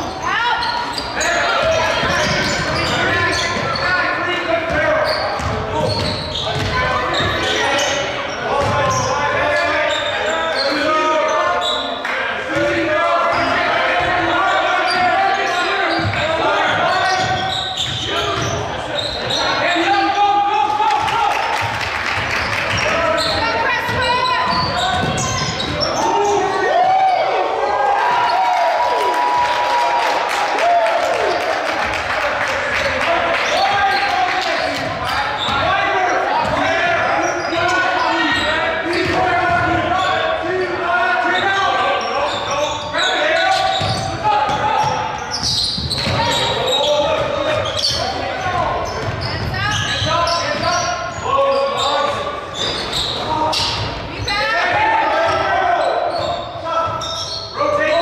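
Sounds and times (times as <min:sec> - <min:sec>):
basketball bouncing on hardwood floor: 0:05.4 - 0:06.8, 0:08.6 - 0:08.8, 0:23.8 - 0:25.9.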